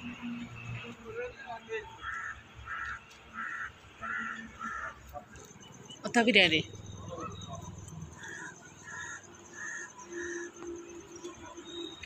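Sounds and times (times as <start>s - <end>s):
crow cawing: 2.0s - 5.0s, 8.1s - 10.6s.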